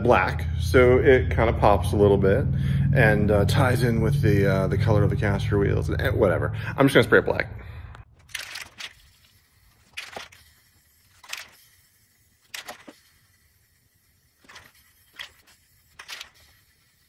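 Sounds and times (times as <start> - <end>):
spray paint can hissing: 8.4 - 17.0.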